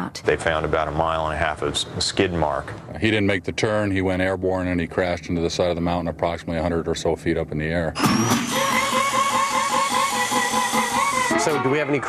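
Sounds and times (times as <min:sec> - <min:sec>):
cutoff wheel grinding metal: 0:08.0 - 0:12.0.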